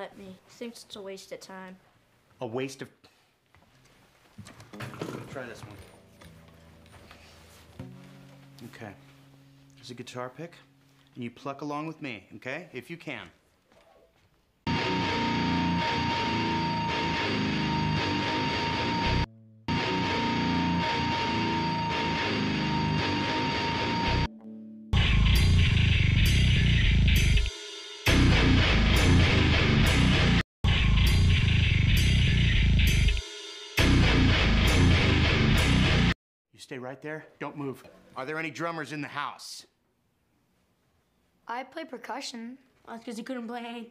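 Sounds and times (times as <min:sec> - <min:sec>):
distorted electric guitars riff: 0:14.7 - 0:24.3, 0:25.0 - 0:36.2.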